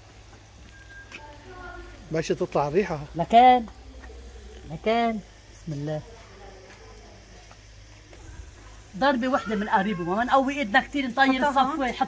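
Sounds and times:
patties crackling on grill: 0:00.0 - 0:12.0.

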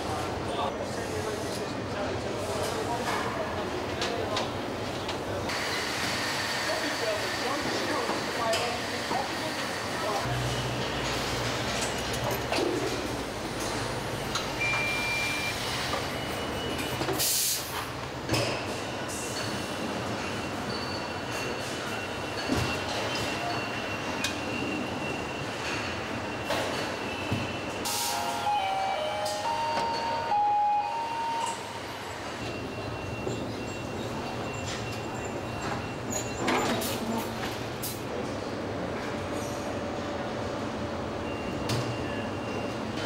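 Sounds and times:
short electronic beeps: 0:14.6 - 0:17.0.

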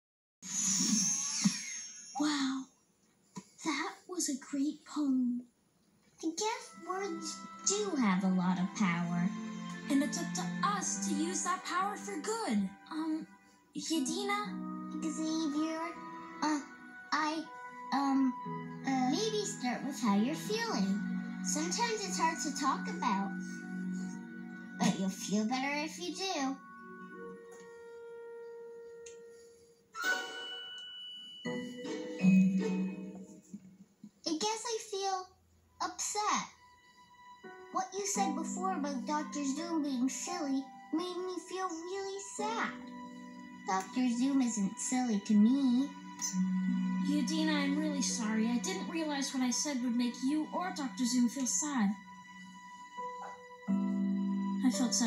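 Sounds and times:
shimmering magic whoosh: 0:30.0 - 0:31.1.

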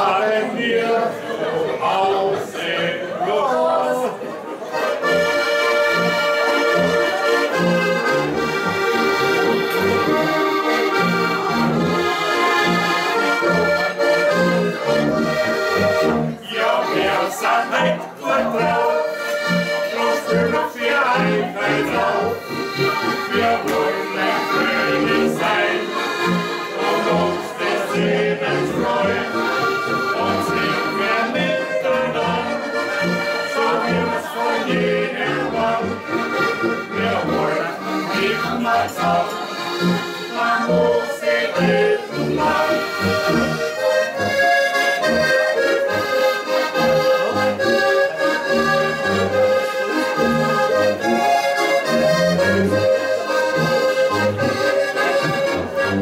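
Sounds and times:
button accordions playing folk tune: 0:00.0 - 0:56.0
tuba oom-pah bass: 0:04.0 - 0:56.0.

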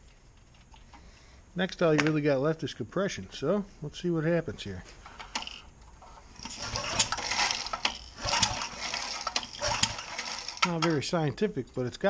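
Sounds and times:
starter rope rasping: 0:05.3 - 0:10.9
engine turning over without firing: 0:06.3 - 0:11.0.

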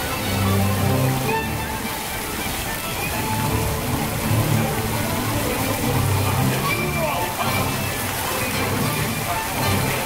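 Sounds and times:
fountain water splashing: 0:00.0 - 0:10.0.

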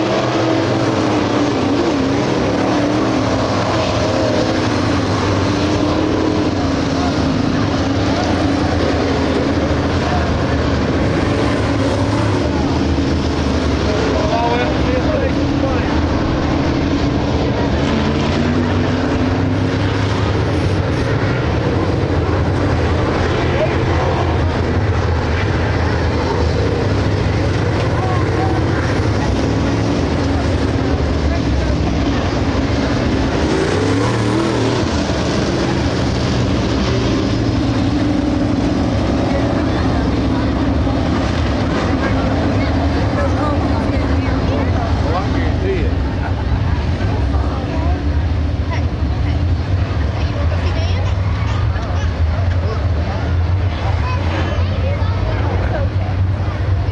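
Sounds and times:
race car engines droning: 0:00.0 - 0:56.9
race car passing by: 0:00.0 - 0:56.9.

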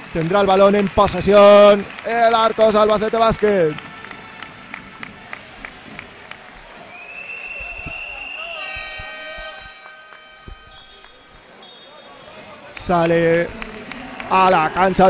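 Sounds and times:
footfalls: 0:05.0 - 0:11.6
high steady squeal: 0:06.9 - 0:12.4
basketball bouncing on hardwood: 0:08.7 - 0:09.7.

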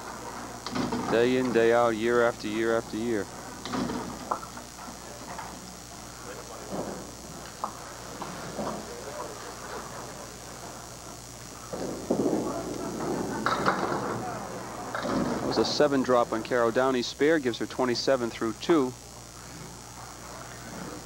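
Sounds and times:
faint background voices: 0:04.7 - 0:15.8
bowling ball rolling down lane: 0:11.7 - 0:14.3.

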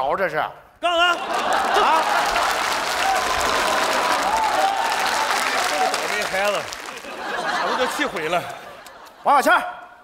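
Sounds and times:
audience applauding: 0:01.0 - 0:09.2.

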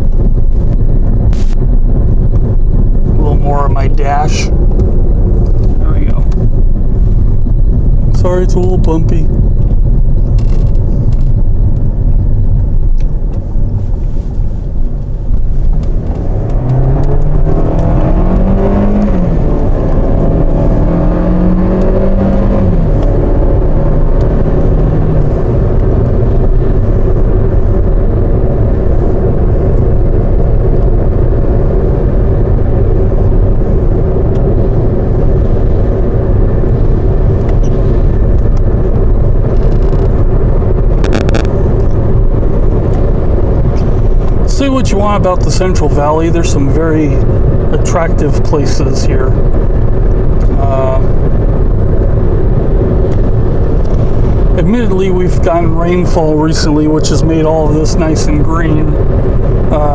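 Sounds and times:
car engine accelerating: 0:00.0 - 0:59.9
tyre and road noise: 0:00.0 - 0:59.9.

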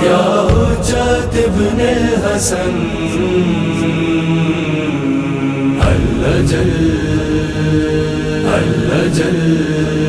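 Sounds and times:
male voices chanting long notes: 0:00.0 - 0:10.0.

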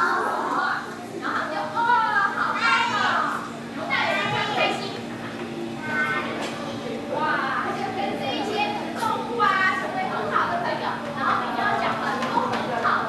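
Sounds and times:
children chattering and calling out: 0:00.0 - 0:13.0.

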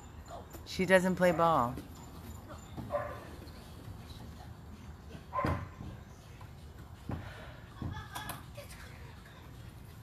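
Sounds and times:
dog barking: 0:02.9 - 0:03.3, 0:05.3 - 0:05.8.

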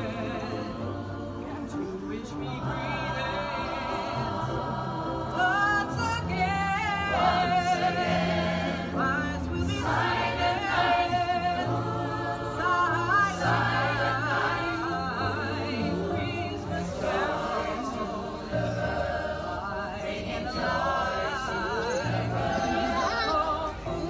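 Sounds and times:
choir singing held notes: 0:00.0 - 0:24.0.

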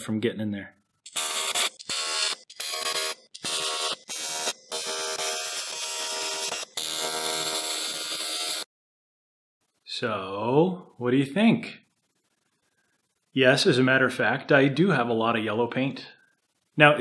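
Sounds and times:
welding arc buzzing: 0:01.0 - 0:08.7.

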